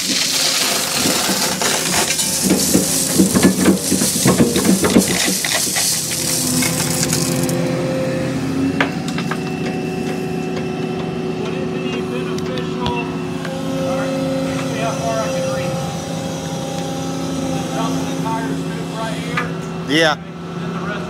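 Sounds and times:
excavator diesel engine running: 0.0s - 21.0s.

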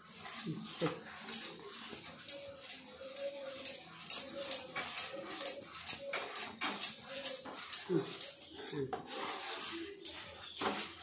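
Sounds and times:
spoon scraping a pan: 0.0s - 11.0s.

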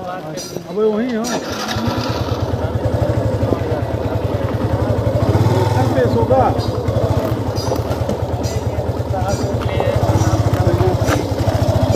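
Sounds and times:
motorcycle engine idling: 1.2s - 11.9s.

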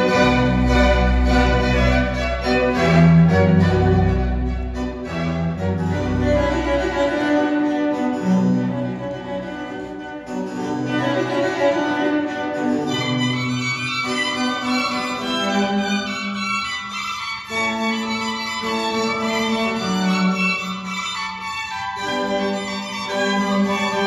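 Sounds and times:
classical string music over loudspeaker: 0.0s - 24.0s.

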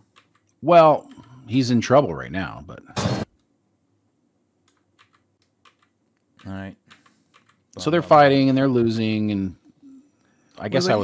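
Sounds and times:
computer keyboard typing clicks: 0.1s - 1.3s, 4.7s - 7.6s.

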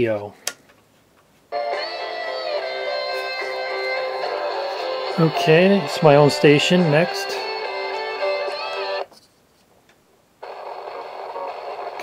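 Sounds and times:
radio playing guitar music: 1.5s - 9.1s, 10.4s - 12.0s
radio static: 10.4s - 12.0s.

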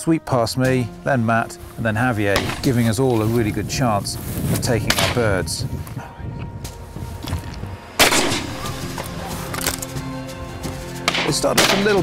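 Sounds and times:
background music with held tones: 0.0s - 12.0s
shotgun shot: 2.4s - 2.7s, 8.0s - 8.7s.

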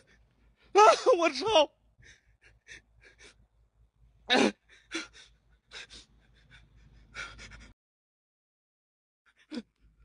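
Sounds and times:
person breathing heavily and gasping: 2.0s - 3.4s, 4.3s - 7.8s.

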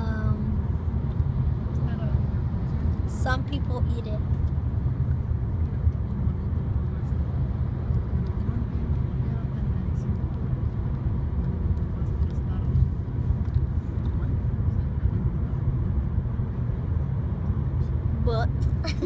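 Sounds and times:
car engine and road noise: 0.0s - 19.0s.

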